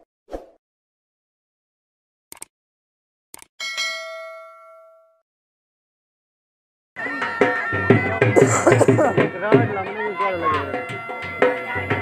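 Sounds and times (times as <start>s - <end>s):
bell-like ding notification: 3.6s - 5.2s.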